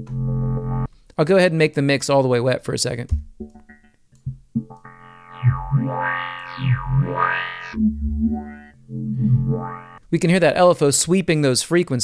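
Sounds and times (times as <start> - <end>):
synthesizer with sweeping filter: 3.4 - 10.0.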